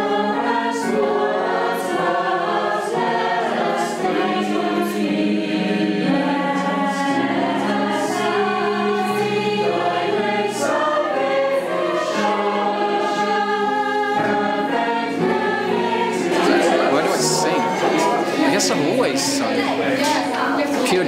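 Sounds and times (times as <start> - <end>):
choir singing in harmony: 0.0 - 21.0
digital piano: 0.0 - 21.0.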